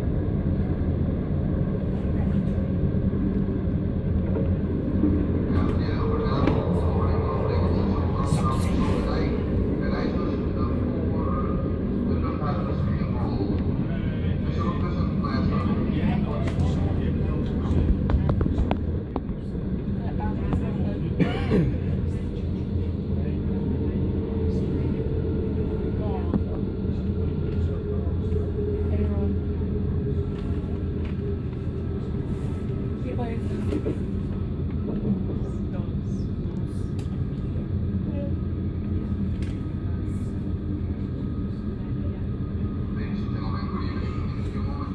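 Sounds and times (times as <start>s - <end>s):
train rumble from inside carriage: 0.0s - 44.9s
faint indistinct voices: 1.8s - 44.9s.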